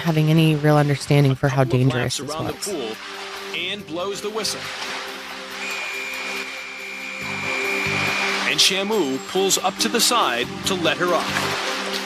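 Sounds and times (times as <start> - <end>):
music with low notes: 1.2 - 12.0
whistle long high blast: 5.6 - 9.2.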